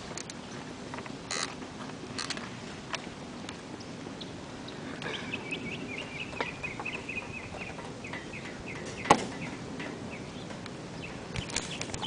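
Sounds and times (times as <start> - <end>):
bird chirping: 3.8 - 12.0.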